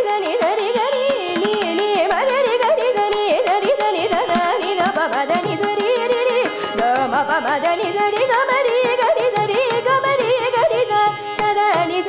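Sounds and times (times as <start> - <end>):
violin: 0.0 - 12.0.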